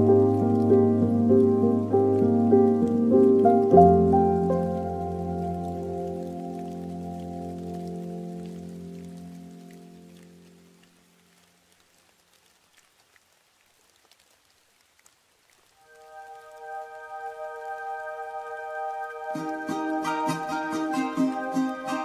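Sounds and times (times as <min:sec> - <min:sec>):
light rain pattering: 0:00.0 - 0:22.0
soft held musical chord: 0:15.8 - 0:22.0.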